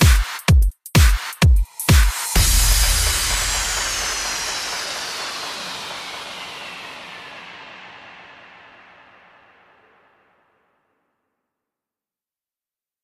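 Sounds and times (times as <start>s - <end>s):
hissing noise sweep: 2.3s - 10.5s
tones gliding downward: 2.4s - 10.0s.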